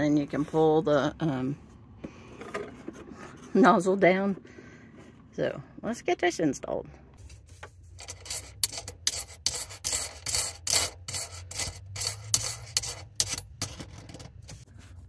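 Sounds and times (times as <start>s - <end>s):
rubbing and scraping of packaging: 7.2s - 15.0s.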